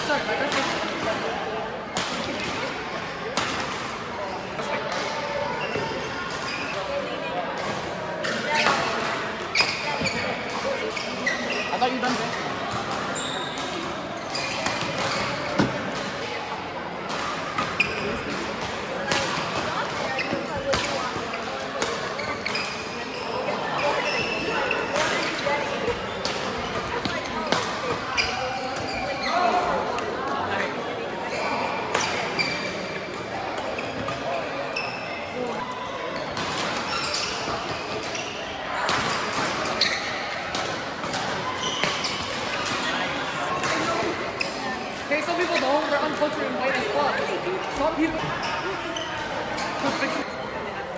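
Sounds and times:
murmur of voices: 0:00.0 - 0:50.9.

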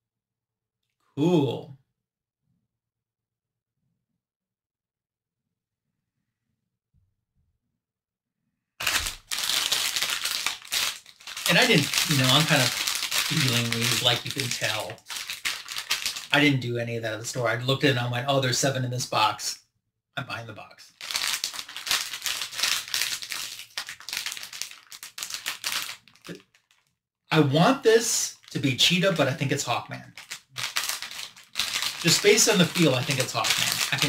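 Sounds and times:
foil packet crinkling: 0:08.8 - 0:16.3, 0:20.9 - 0:26.9, 0:28.4 - 0:34.0
plastic wrapper crackling: 0:08.8 - 0:16.4, 0:20.9 - 0:26.9, 0:28.4 - 0:34.0.

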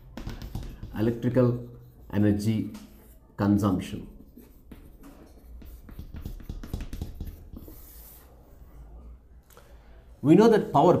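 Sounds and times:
chalk scratching on chalkboard: 0:00.2 - 0:08.5.

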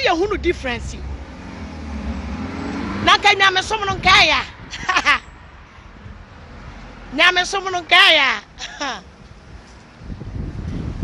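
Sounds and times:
motor vehicle passing: 0:00.0 - 0:11.0.

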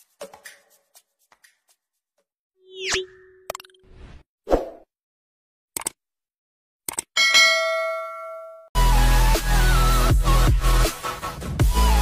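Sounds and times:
pops and clicks: 0:05.8 - 0:06.0, 0:06.9 - 0:07.1
bright bell ding: 0:07.2 - 0:08.7.

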